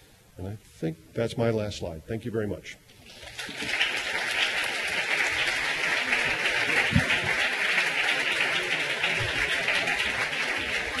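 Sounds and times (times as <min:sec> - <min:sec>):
audience applauding: 0:03.1 - 0:11.0.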